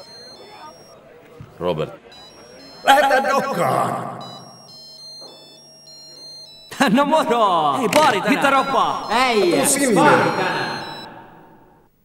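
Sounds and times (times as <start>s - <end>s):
phone ringtone beeping: 0.0s - 1.0s, 2.0s - 11.9s
man answering phone: 0.0s - 11.6s.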